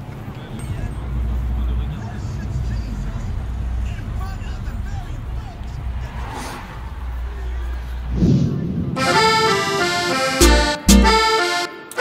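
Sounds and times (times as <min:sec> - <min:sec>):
car engine and road rumble: 0:00.0 - 0:08.9.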